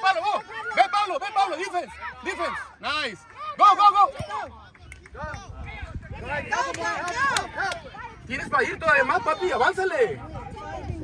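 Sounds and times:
spectators shouting: 0:00.0 - 0:04.5
wind rumble on microphone: 0:04.7 - 0:11.0.

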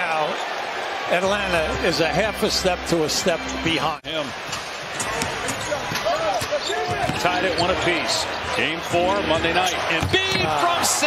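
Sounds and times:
arena noise: 0:00.0 - 0:11.0
basketball bouncing on hardwood: 0:10.0 - 0:10.5.

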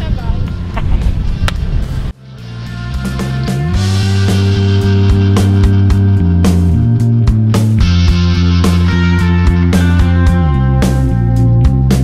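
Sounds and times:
wind rumble on microphone: 0:00.0 - 0:02.2
background music: 0:00.0 - 0:12.0.

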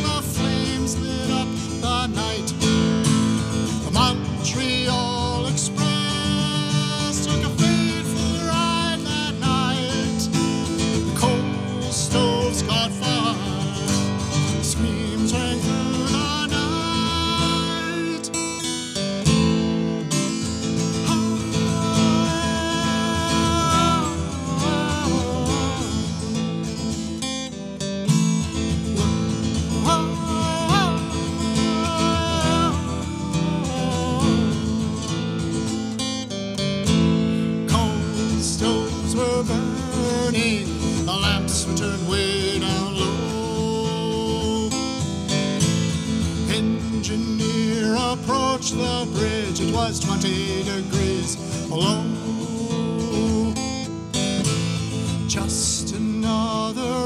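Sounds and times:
folk ballad on acoustic guitar: 0:00.0 - 0:57.0.

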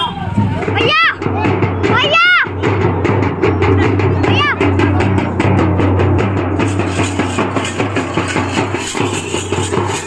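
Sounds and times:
dhol drums beaten fast: 0:00.0 - 0:10.0
hand cymbals clashing: 0:05.9 - 0:10.0.

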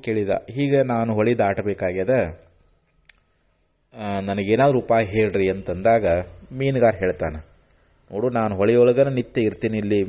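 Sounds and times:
man talking: 0:00.0 - 0:02.5, 0:03.9 - 0:10.0.

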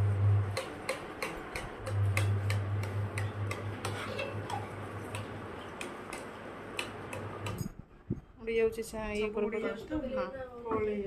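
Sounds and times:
low hum: 0:00.0 - 0:00.6.

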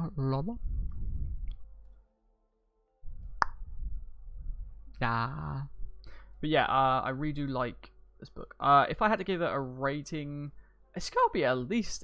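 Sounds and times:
sharp mouth click: 0:03.4 - 0:03.6.

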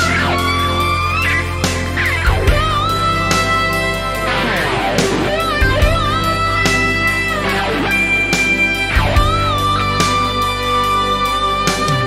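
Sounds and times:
backing music with drum hits: 0:00.0 - 0:12.0
lead electric guitar melody: 0:00.0 - 0:12.0.

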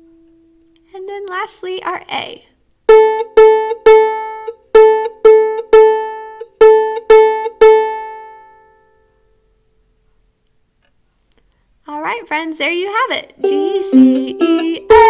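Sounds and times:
ukulele string plucked: 0:02.9 - 0:08.9, 0:13.4 - 0:15.0.

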